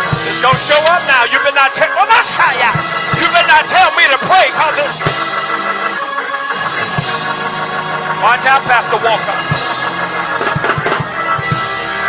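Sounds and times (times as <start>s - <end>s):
keyboard chords: 0.0s - 12.0s.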